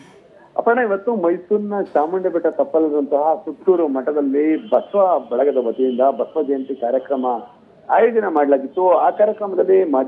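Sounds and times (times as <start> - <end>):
man narrating: 0.6 - 10.0.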